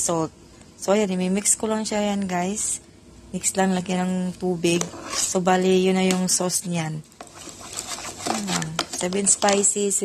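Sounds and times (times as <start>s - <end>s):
metal spoon scraping plastic bowl: 4.7s - 5.5s, 7.2s - 9.8s.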